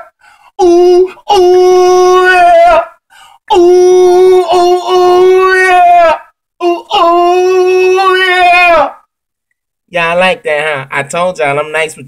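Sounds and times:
singer breathing: 0:00.2 - 0:00.6, 0:03.1 - 0:03.5.

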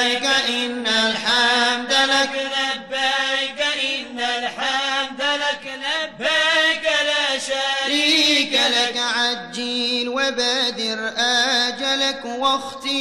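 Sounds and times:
man chanting: 0:00.0 - 0:13.0.

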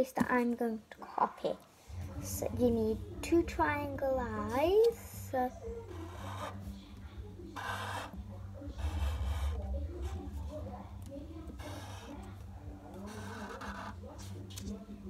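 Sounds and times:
faint television voices: 0:00.0 - 0:15.0
steady low hum: 0:01.7 - 0:15.0
marker scratching on paper: 0:05.9 - 0:06.7, 0:07.6 - 0:08.2, 0:08.8 - 0:14.7.

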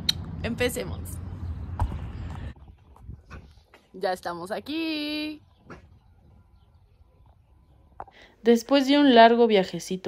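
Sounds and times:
wind rumble on phone microphone: 0:00.0 - 0:03.7.

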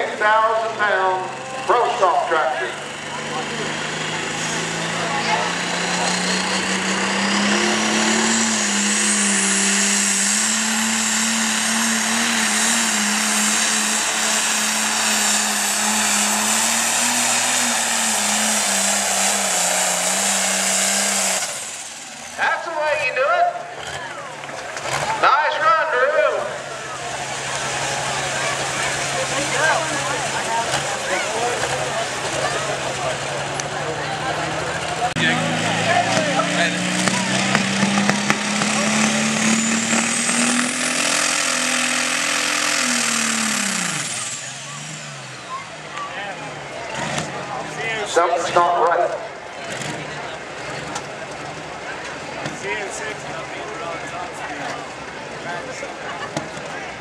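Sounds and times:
voices: 0:00.0 - 0:08.3, 0:21.8 - 0:40.0, 0:43.9 - 0:57.0
tractor diesel engine running hard: 0:00.0 - 0:57.0.

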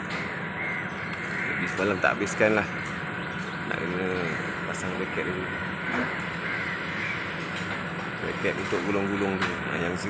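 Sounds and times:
harsh cawing bird calls: 0:00.0 - 0:10.0
steady background hum: 0:00.0 - 0:10.0.

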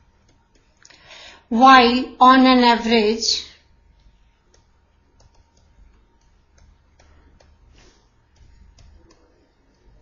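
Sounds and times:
stylus tapping on pen tablet: 0:04.0 - 0:10.0.

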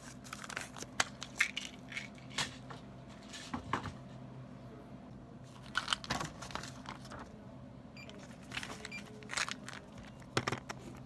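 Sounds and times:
paper crinkling: 0:08.2 - 0:11.0.

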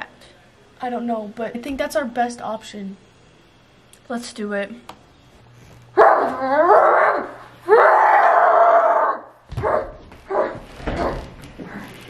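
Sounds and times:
dog-like howls: 0:06.0 - 0:10.6.

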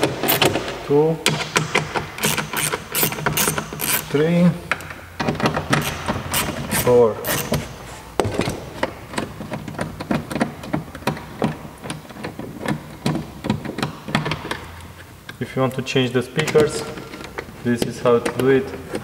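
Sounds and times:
hand ratchet clicking: 0:01.3 - 0:04.2, 0:05.5 - 0:07.7.

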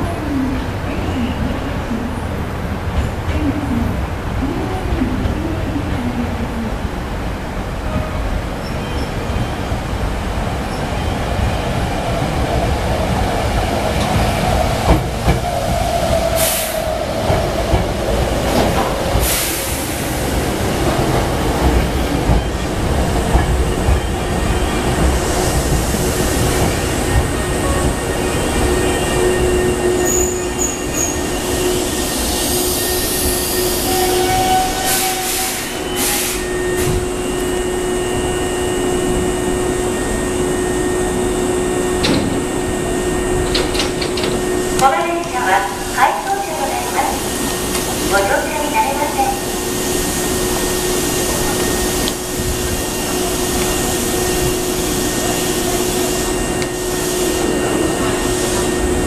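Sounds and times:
stationary train hum: 0:00.0 - 0:59.0
train wheel and brake noise: 0:12.4 - 0:59.0
electric train whine slowing: 0:21.8 - 0:44.8.

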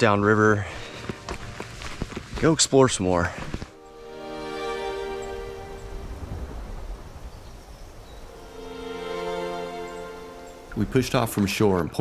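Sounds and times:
sustained music chords: 0:03.8 - 0:06.9, 0:08.2 - 0:11.2.

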